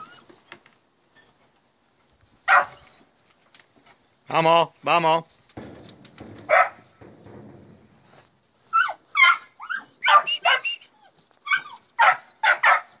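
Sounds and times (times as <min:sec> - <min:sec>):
puppies yapping: 0:02.4 - 0:03.1, 0:06.4 - 0:07.8, 0:08.6 - 0:13.0.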